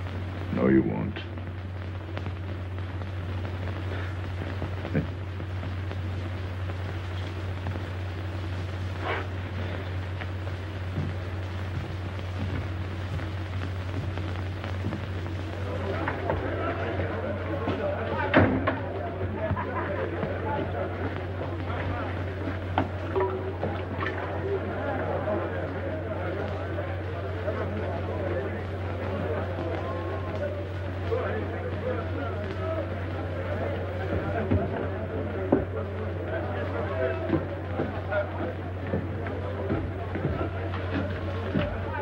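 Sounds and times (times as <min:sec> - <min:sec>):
film soundtrack hum and hiss: 0:00.0 - 0:42.0
pops and crackles: 0:00.0 - 0:42.0
indistinct background voices: 0:02.2 - 0:42.0.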